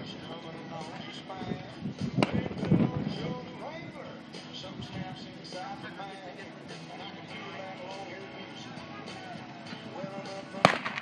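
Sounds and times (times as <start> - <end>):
rifle shot: 10.6 - 11.0.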